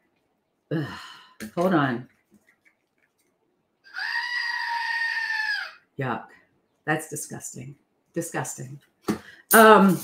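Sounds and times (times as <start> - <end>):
toy goat scream: 3.8 - 5.9.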